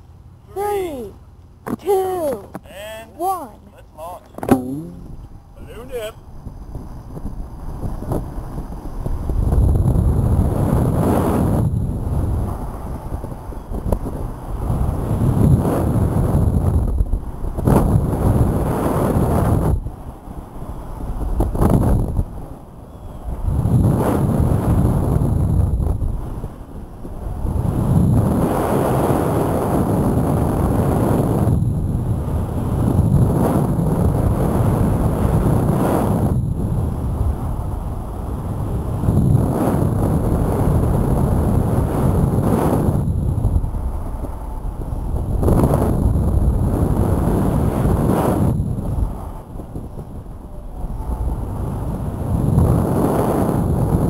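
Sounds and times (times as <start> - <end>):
wind buffeting microphone: 3.2 - 54.0.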